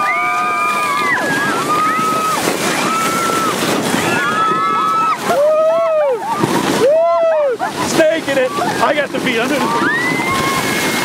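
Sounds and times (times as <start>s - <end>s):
sled scraping down snow: 0.0s - 11.0s
wind buffeting microphone: 0.0s - 11.0s.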